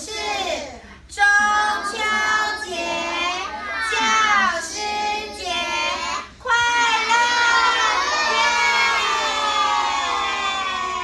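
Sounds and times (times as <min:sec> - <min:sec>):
children shouting in unison: 0:07.0 - 0:11.0.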